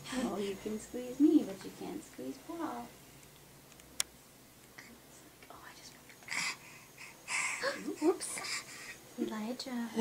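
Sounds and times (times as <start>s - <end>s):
soft whispering: 4.8s - 6.6s.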